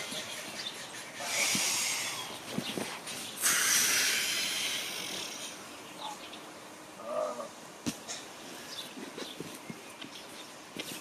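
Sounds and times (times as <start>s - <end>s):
forceful hissing out-breath: 1.2s - 2.3s, 3.4s - 5.6s.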